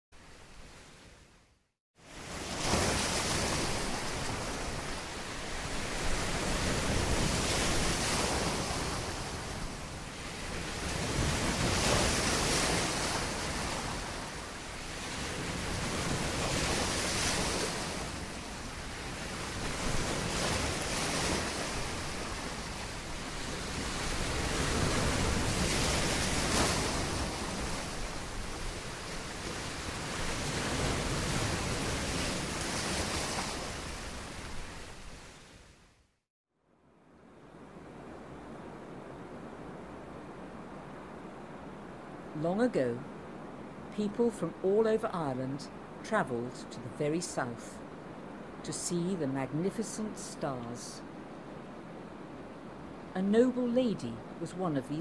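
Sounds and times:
sea waves washing on shore: 0:02.0 - 0:36.0, 0:37.4 - 0:55.0.

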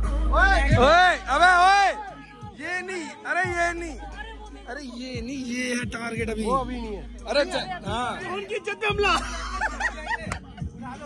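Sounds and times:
background music: 0:00.0 - 0:11.0
men laughing and calling out: 0:00.4 - 0:11.0.

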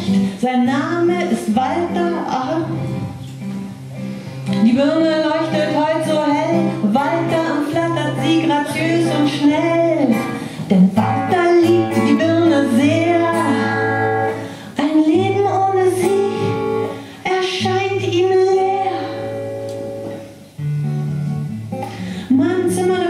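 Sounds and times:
person singing with vibrato: 0:00.0 - 0:03.2, 0:04.4 - 0:19.6, 0:22.0 - 0:23.0
strummed acoustic guitar: 0:00.0 - 0:23.0.

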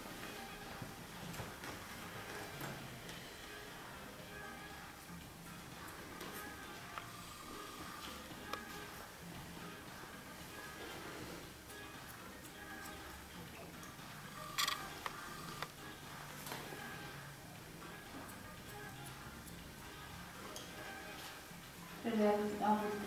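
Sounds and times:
faint background music: 0:00.0 - 0:23.0.

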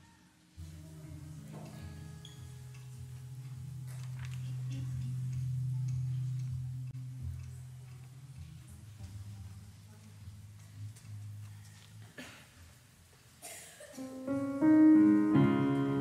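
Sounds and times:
low hum from amplified instruments: 0:00.6 - 0:16.0.

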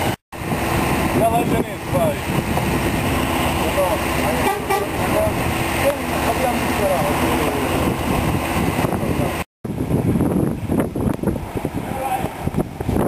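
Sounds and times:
vehicle engines running: 0:00.0 - 0:13.0
people talking: 0:01.2 - 0:02.3, 0:03.6 - 0:07.9, 0:11.8 - 0:12.3.

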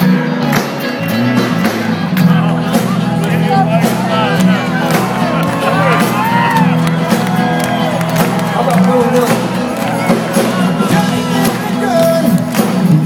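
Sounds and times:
crowd voices: 0:00.0 - 0:13.0
live rock band playing: 0:00.0 - 0:13.0.

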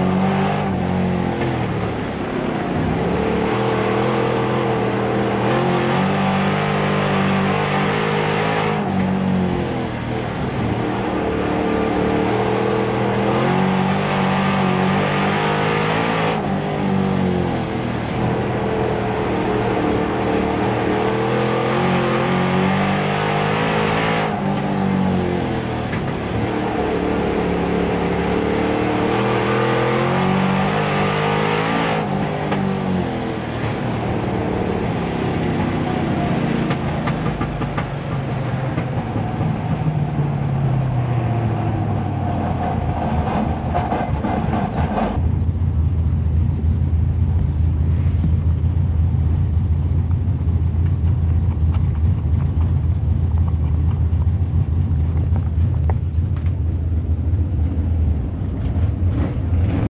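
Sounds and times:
race car engine revving: 0:00.0 - 0:45.2, 0:57.4 - 0:59.9.

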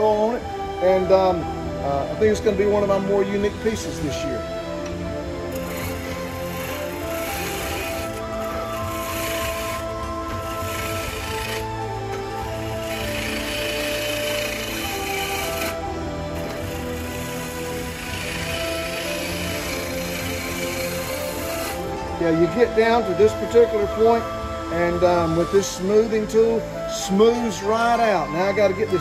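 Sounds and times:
background music with held notes: 0:00.0 - 0:29.0
lathe tool cutting wood: 0:02.4 - 0:29.0.

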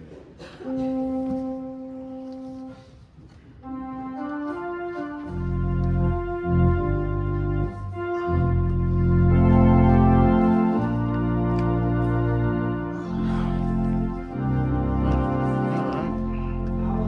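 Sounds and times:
organ playing a hymn: 0:00.6 - 0:03.0, 0:03.6 - 0:17.0.

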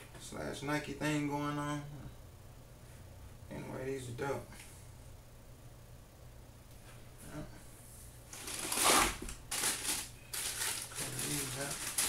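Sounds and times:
tissue paper and cardboard box rustling: 0:08.3 - 0:12.0.

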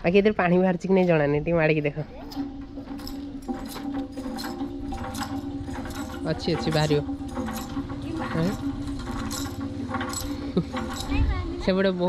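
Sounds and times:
hand pump clicking and clanking: 0:00.4 - 0:12.0
steady hum: 0:00.8 - 0:12.0.

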